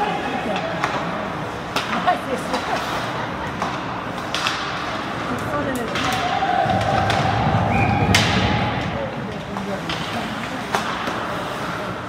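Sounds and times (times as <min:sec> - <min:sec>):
hockey puck impact crack: 0:00.5 - 0:12.0.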